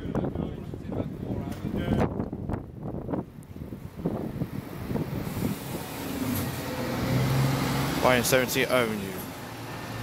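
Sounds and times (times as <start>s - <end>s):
diesel coach engine passing: 3.8s - 10.0s.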